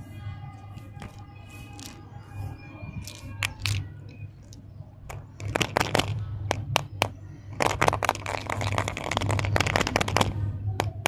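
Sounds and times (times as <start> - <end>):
plastic capsule crackling rustle: 0.8 - 2.0, 3.0 - 10.4.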